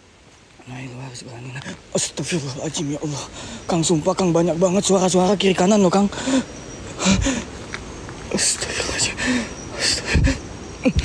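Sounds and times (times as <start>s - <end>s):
man breathing hard: 6.1s - 7.6s, 8.6s - 10.5s.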